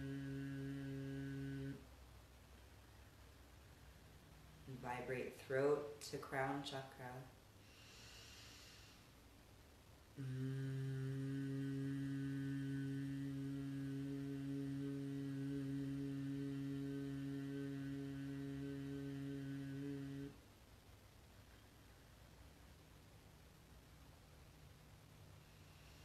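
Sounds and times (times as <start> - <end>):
woman humming low: 0.0 - 1.9, 10.2 - 20.4
soft in-breath: 7.6 - 9.2, 25.5 - 26.0.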